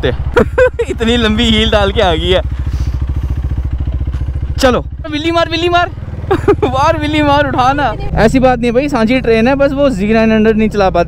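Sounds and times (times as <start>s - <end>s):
motorcycle engine riding off: 0.0s - 11.0s
voices talking: 0.0s - 11.0s.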